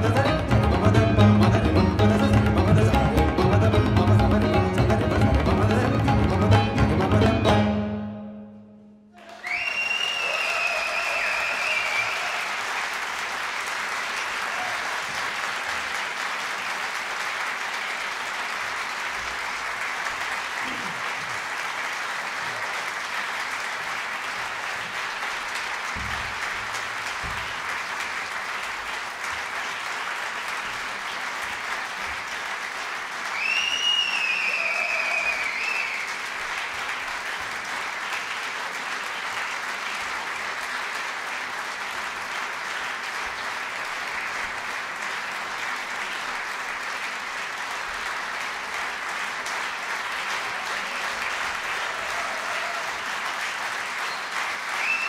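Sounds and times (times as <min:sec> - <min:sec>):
audience applauding: 0:00.0 - 0:06.5, 0:09.2 - 0:55.0
high whistle from audience: 0:09.2 - 0:12.5, 0:33.3 - 0:36.2, 0:54.0 - 0:55.0.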